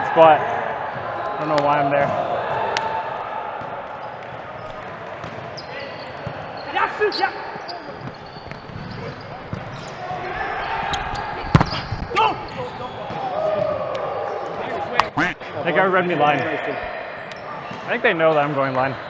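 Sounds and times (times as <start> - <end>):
murmur of voices: 0.0 - 19.0
short squeaks: 5.6 - 10.0
hands smacking volleyball: 11.5 - 12.2.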